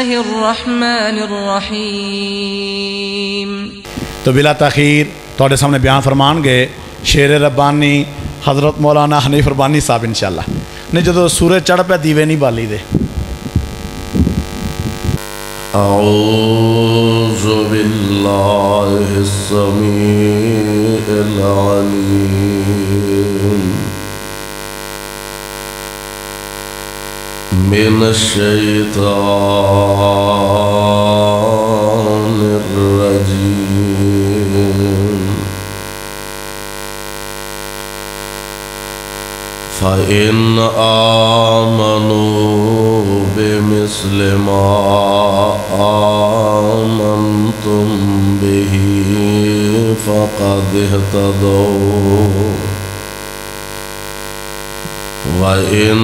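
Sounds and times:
man reciting melodically over loudspeaker: 0.0s - 12.9s, 15.7s - 24.1s, 27.5s - 35.8s, 39.7s - 53.0s, 55.2s - 56.0s
electrical mains hum: 0.0s - 56.0s.

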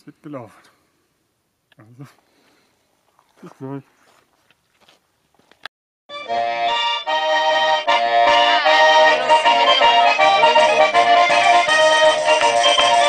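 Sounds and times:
lively folk dance music with accordion: 6.1s - 13.0s.

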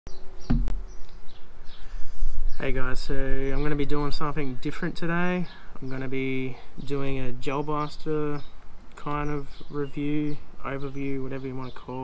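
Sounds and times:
small birds chirping: 0.1s - 12.0s.

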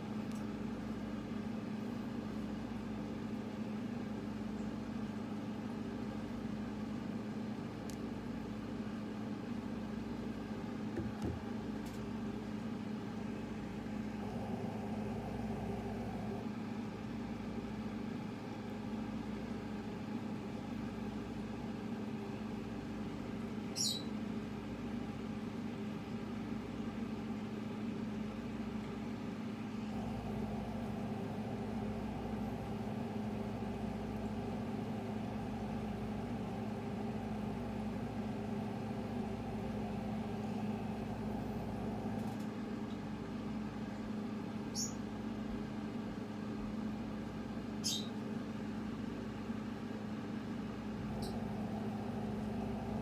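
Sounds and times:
low mechanical hum: 0.0s - 53.0s.

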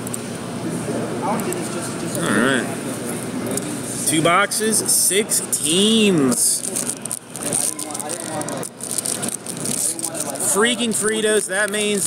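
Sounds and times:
indistinct background talk: 0.3s - 12.0s
crackling and scraping handling noise: 6.5s - 12.0s.

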